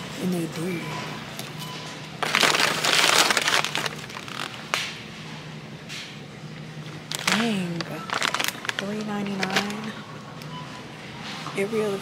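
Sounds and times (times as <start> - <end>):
plastic bag crinkling: 2.2 - 4.8, 7.1 - 10.0.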